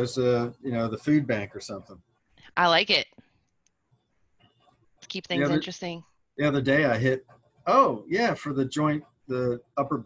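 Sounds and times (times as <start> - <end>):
person's voice: 0.0 - 1.9, 2.6 - 3.0, 5.1 - 10.0.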